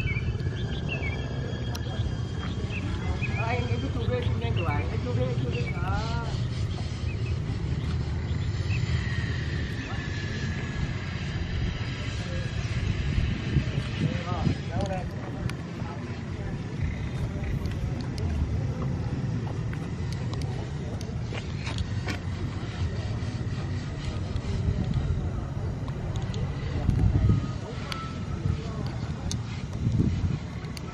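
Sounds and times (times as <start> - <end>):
faint voices: 0.0 - 30.9
thin steady whine: 0.0 - 30.9.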